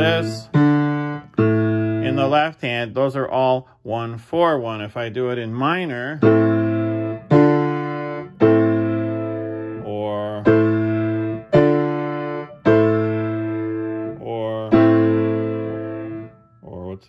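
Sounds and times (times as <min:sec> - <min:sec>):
piano block chords: 0:00.0 - 0:02.9, 0:05.3 - 0:16.8.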